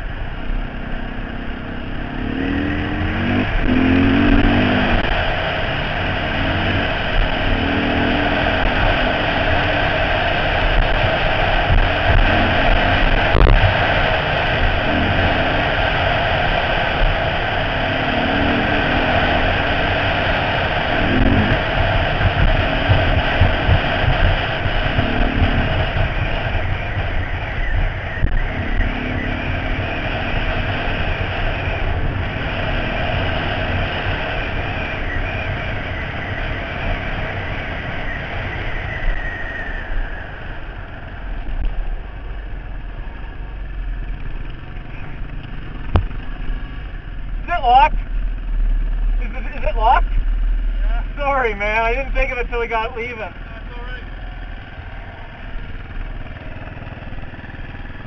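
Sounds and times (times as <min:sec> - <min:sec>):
dirt bike engine revving: 0:00.0 - 0:58.0
wind rush on microphone: 0:01.8 - 0:51.3.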